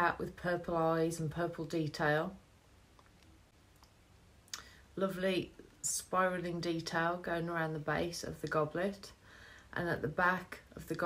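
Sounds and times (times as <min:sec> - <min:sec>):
short breath: 0:09.2 - 0:09.7.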